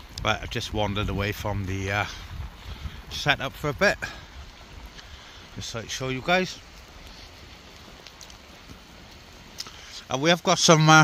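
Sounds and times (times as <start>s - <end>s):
wind rumble on microphone: 0.0s - 9.6s
rain falling on forest: 0.0s - 11.0s.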